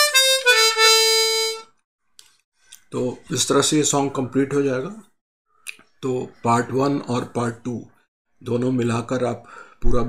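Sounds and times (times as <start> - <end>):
harmonica note: 0.0 - 1.7.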